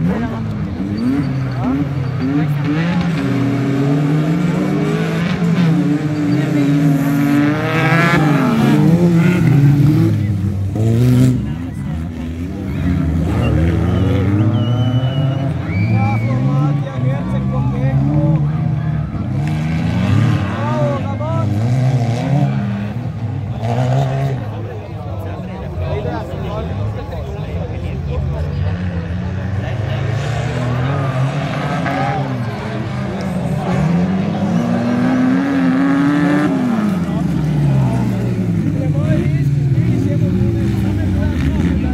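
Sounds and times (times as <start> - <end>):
buggy engines revving: 0.0 - 41.9
spectators' voices: 0.0 - 41.9.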